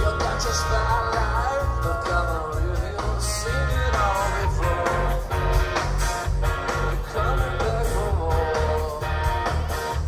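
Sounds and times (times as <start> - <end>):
bass: 0.0 - 10.0
electric guitar: 0.0 - 10.0.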